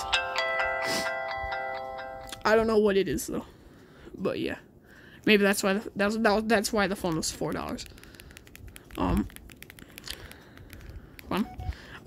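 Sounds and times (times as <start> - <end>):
phone startup jingle: 11.3 - 11.9.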